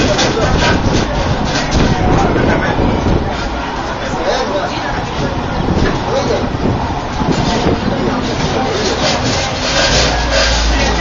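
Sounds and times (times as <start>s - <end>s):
funicular car rumbling on rails: 0.0s - 11.0s
passengers talking: 0.0s - 11.0s.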